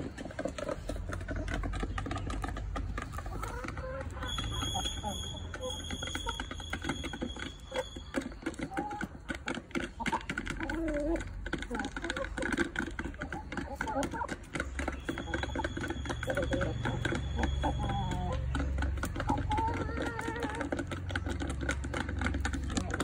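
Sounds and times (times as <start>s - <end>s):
chickens clucking: 0.0s - 23.0s
chickens pecking beak clicks: 0.0s - 23.0s.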